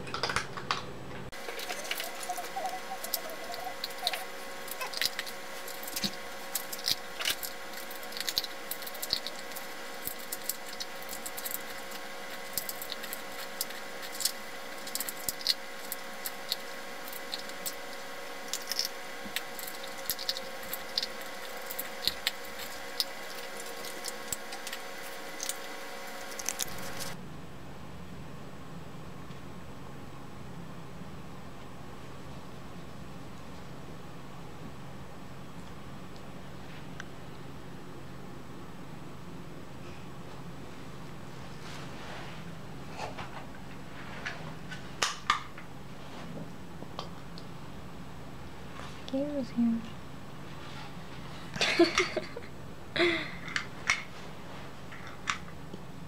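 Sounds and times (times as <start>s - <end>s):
steady hum: 0.0s - 56.0s
puppy crunching dry kibble: 1.4s - 27.2s.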